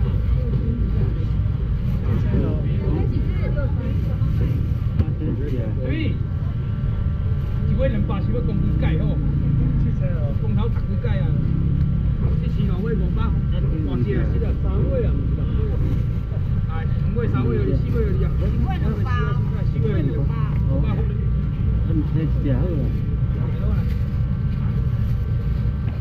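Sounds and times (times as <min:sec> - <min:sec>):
crowd chatter: 0:00.0 - 0:26.0
steady low rumble: 0:00.0 - 0:26.0.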